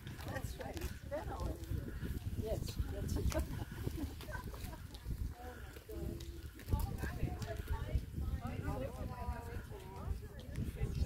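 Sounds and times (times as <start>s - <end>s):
footsteps on asphalt: 0.0s - 11.0s
women chattering: 0.0s - 11.0s.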